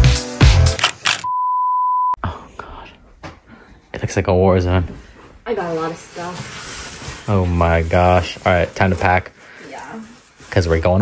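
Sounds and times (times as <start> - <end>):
electronic bleep tone: 1.2 - 2.2.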